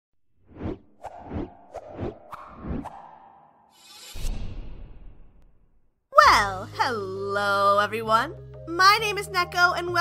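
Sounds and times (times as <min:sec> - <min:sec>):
quick downward swishes: 0:00.4 - 0:05.3.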